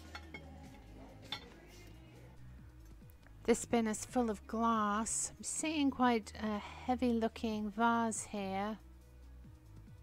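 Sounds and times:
ceramic dishes clinking: 0:00.0 - 0:00.6.

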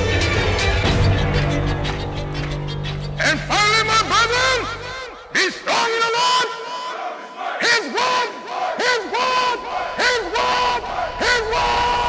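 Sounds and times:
pitched shouted cries: 0:05.7 - 0:12.0.

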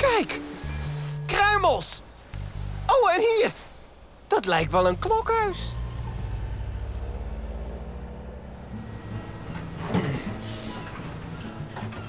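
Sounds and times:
cartoon engines driving off: 0:04.6 - 0:11.4.

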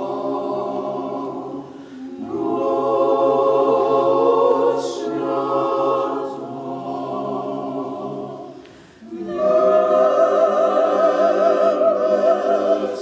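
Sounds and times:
church choir singing a cappella: 0:00.0 - 0:13.0.

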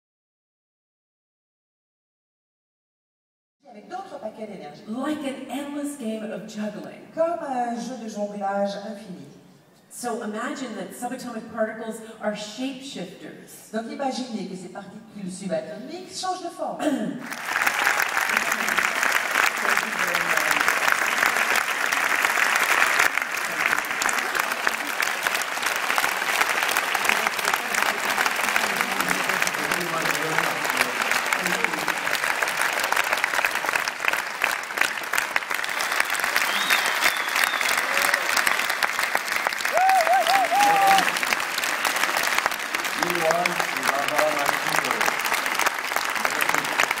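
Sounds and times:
large audience applauding: 0:17.2 - 0:47.0.

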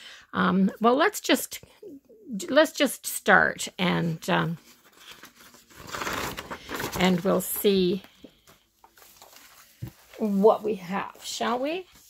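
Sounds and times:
paper pages handled: 0:04.6 - 0:12.0.

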